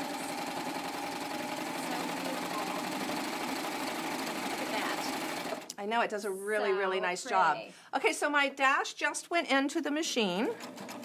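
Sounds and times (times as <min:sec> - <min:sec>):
serger sewing machine running: 0:00.0 - 0:05.7, 0:10.5 - 0:11.0.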